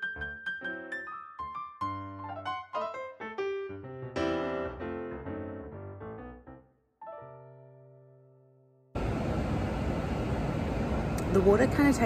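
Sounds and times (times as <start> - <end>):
piano chord: 0.0 - 9.1
airport terminal rushing noise: 9.0 - 12.0.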